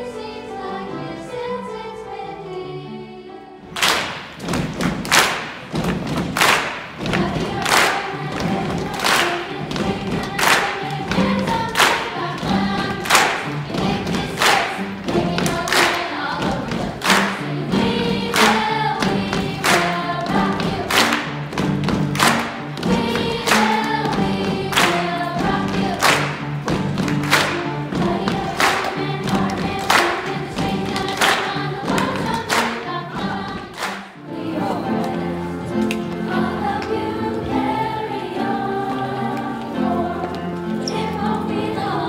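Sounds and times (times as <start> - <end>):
children's choir singing: 0.0 - 42.0
sharp thumping beat: 4.2 - 7.6.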